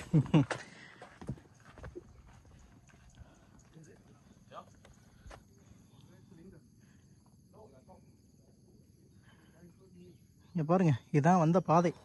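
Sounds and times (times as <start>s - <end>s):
faint insect chirring: 0.0s - 12.0s.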